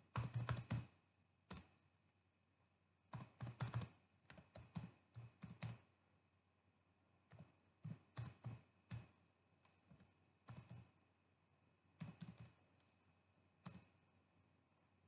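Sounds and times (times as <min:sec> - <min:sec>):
computer keyboard typing: 0:00.1 - 0:00.9, 0:01.5 - 0:01.7, 0:03.1 - 0:05.9, 0:07.3 - 0:10.9, 0:12.0 - 0:13.0, 0:13.6 - 0:13.9.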